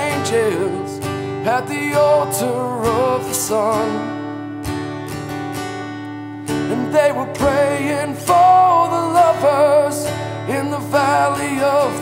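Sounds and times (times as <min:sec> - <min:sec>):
man singing country song: 0:00.0 - 0:04.6, 0:06.4 - 0:12.0
acoustic guitar strumming: 0:00.0 - 0:12.0.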